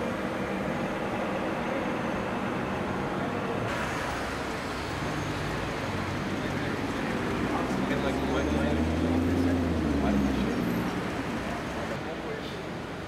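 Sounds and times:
traffic: 0.0s - 13.0s
vehicle engines idling: 0.0s - 13.0s.

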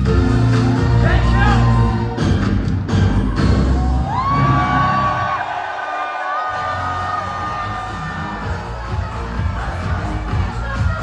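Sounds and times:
loud dance music with heavy bass: 0.0s - 5.4s, 6.4s - 11.0s
crowd cheering: 0.2s - 11.0s.

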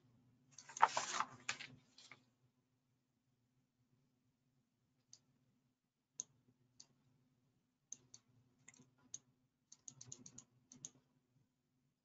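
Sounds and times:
faint computer mouse clicks: 7.9s - 11.0s.

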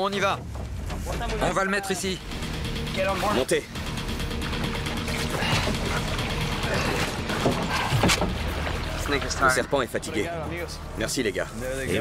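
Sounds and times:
background music with low held tones: 0.0s - 12.0s.

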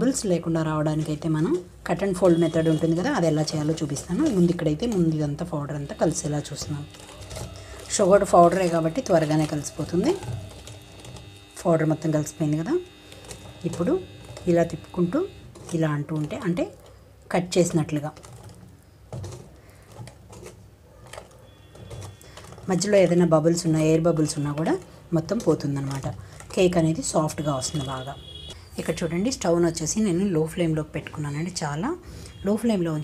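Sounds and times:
woman speaking: 0.0s - 7.0s, 7.8s - 10.4s, 11.6s - 12.9s, 13.6s - 18.2s, 22.7s - 28.2s, 28.8s - 33.0s
whisk scraping metal bowl: 2.3s - 16.6s, 17.7s - 28.1s.

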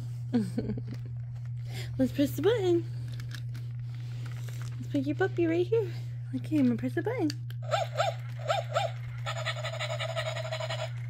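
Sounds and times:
toy puppy pulsing whine: 7.6s - 11.0s.

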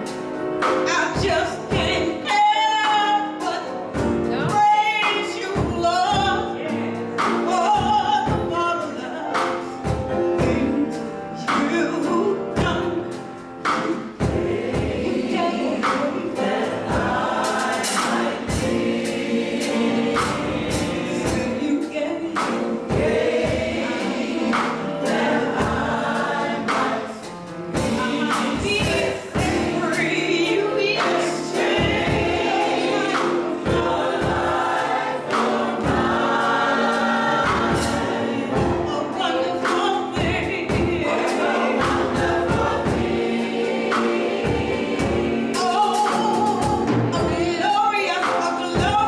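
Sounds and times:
drums: 0.0s - 49.0s
gospel choir singing: 0.0s - 49.0s
piano: 0.0s - 49.0s.

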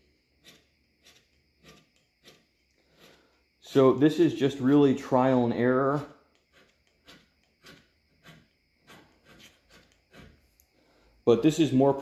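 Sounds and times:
hand scraper on cast iron: 0.0s - 3.2s, 6.0s - 10.5s.

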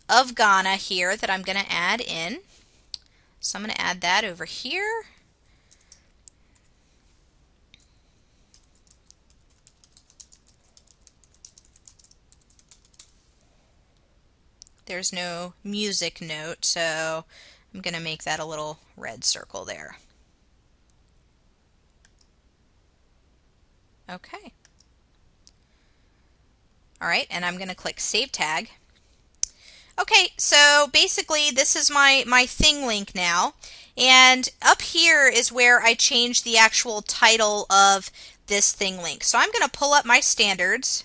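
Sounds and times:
typing on computer keyboard: 8.5s - 13.1s.

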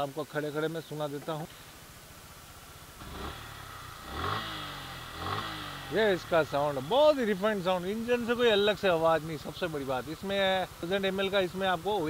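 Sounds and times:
motorcycle engine idling and revving: 1.6s - 12.0s.

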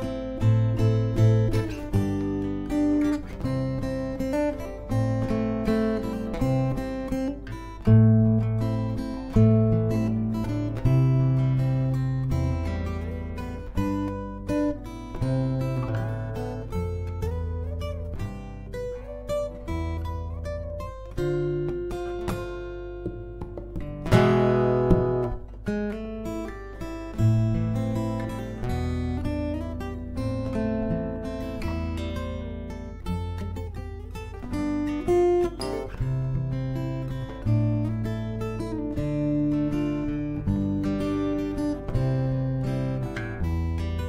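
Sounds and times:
fingerstyle acoustic guitar: 0.0s - 44.0s.

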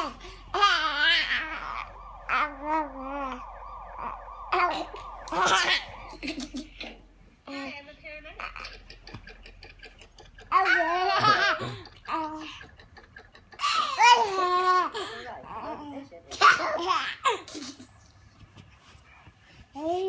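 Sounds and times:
baby laughing: 8.4s - 15.1s.

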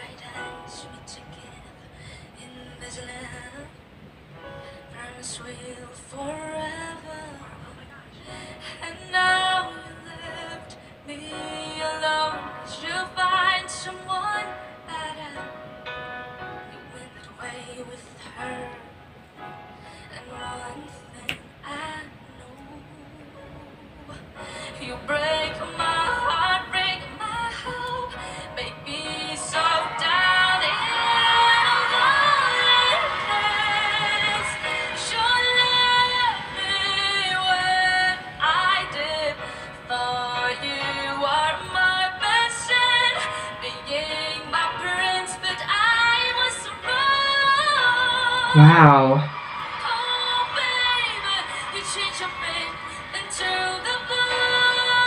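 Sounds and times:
girl singing a ballad: 0.0s - 55.0s
grand piano: 0.0s - 55.0s.

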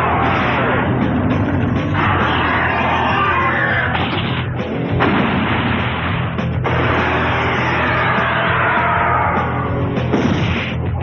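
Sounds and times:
blasts and explosions: 0.0s - 11.0s
loud soundtrack music: 0.0s - 11.0s.

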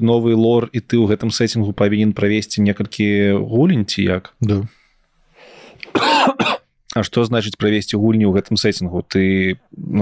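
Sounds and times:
soft breath: 4.7s - 5.9s
man coughing: 5.9s - 6.6s.

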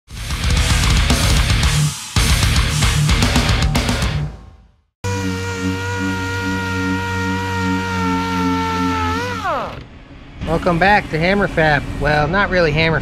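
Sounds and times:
intro music: 0.1s - 8.1s
orbital sander whining: 5.0s - 9.9s.

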